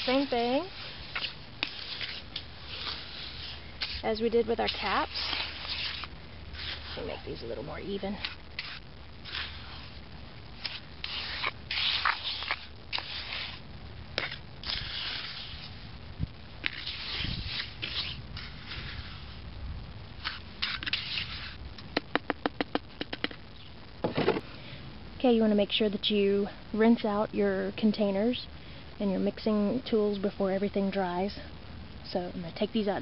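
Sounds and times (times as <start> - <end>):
trowel scraping wet cement: 0.0 - 10.0, 10.6 - 13.6, 14.2 - 15.8, 16.6 - 19.4, 20.2 - 21.6.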